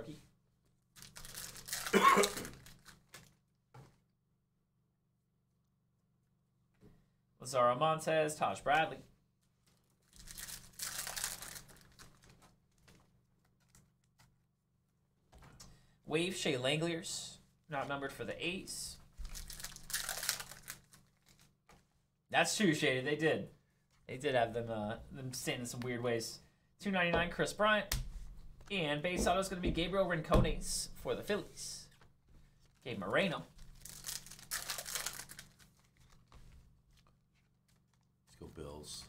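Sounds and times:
foil wrapper crinkling and tearing: 1.0 - 3.3, 9.6 - 13.8, 19.2 - 21.5, 33.6 - 36.4.

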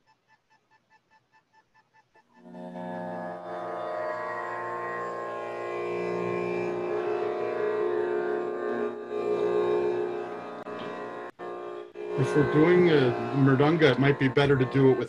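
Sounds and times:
tanpura drone: 2.4 - 15.0.

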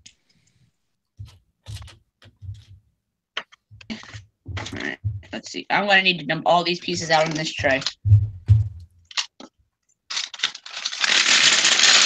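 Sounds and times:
dull thumps: 1.2 - 5.4, 7.6 - 9.0
plastic pieces clattering into tray: 6.8 - 7.9, 10.1 - 12.0.

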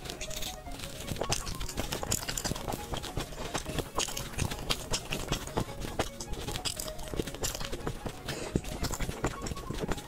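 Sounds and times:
mouth chewing sounds: 0.0 - 10.0.

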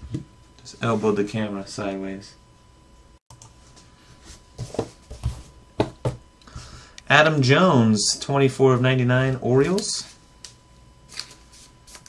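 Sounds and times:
cards sliding papery rustle: 11.1 - 12.0.

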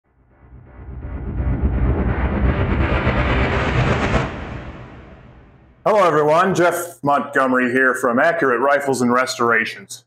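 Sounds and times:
low rumble: 0.1 - 6.5
hissing whoosh: 0.4 - 5.8.

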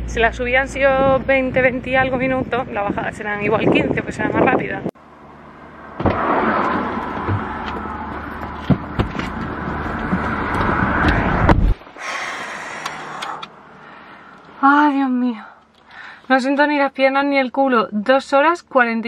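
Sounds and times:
outside noise: 0.0 - 19.0
car door opening: 6.0 - 11.8
car door shutting: 6.0 - 11.8.

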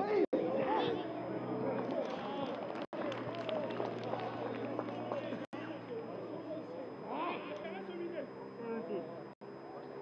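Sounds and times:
people shouting and calling out: 0.0 - 9.1
steady low hum: 0.1 - 10.0.

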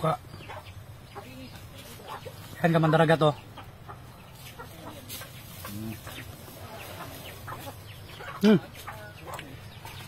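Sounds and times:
chicken clucking faintly: 0.0 - 10.0.

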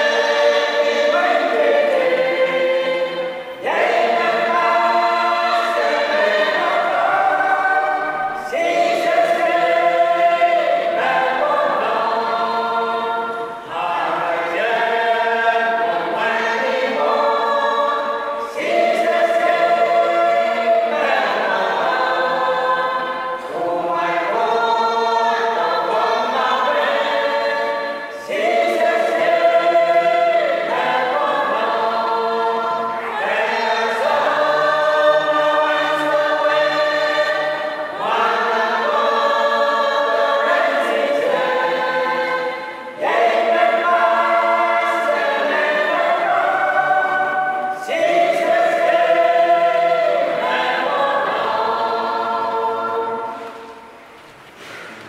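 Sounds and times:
group singing a hymn: 0.0 - 55.0.

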